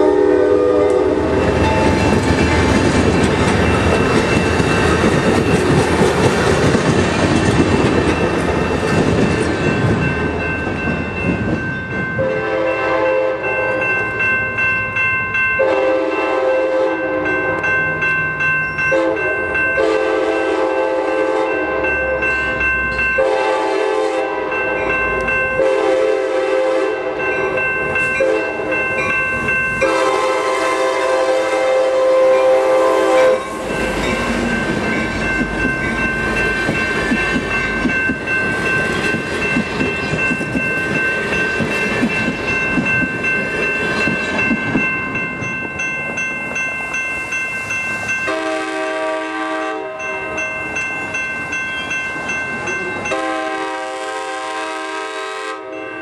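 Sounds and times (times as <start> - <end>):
train horn blasts: 0.0 - 2.7, 12.2 - 13.8, 15.6 - 17.6, 18.9 - 22.2, 23.2 - 24.8, 25.6 - 27.6, 28.2 - 28.8, 29.8 - 33.9, 48.3 - 50.2, 53.1 - 55.9
train rumbling past: 0.0 - 56.0.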